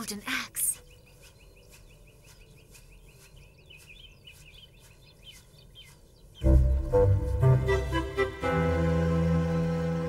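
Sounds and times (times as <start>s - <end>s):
faint birdsong chirps: 0.0s - 10.0s.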